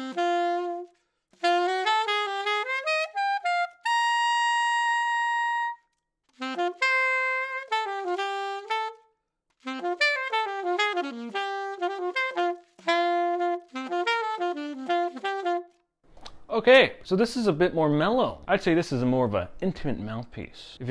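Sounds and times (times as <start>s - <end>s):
alto saxophone running notes: 0.0s - 15.8s.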